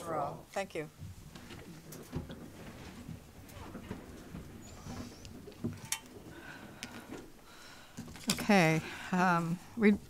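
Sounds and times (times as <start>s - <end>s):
rustling: 0.9s - 9.7s
chairs shifting and creaking: 1.0s - 10.0s.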